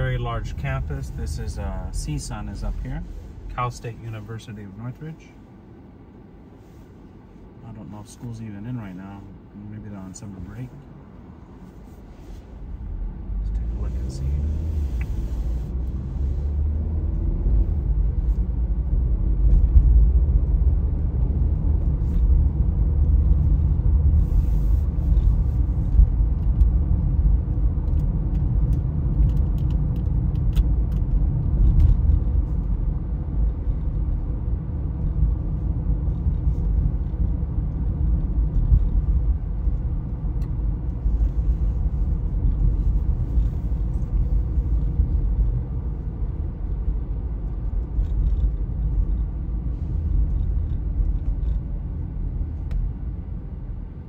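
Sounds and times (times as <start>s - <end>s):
car cabin road rumble: 0.0s - 54.0s.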